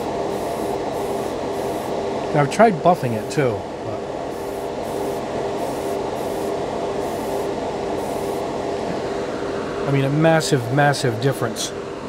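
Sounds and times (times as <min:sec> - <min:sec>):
airbrush hissing bursts: 0:00.0 - 0:02.0, 0:02.9 - 0:03.5, 0:04.3 - 0:08.6
extraction fan hum: 0:00.0 - 0:12.0.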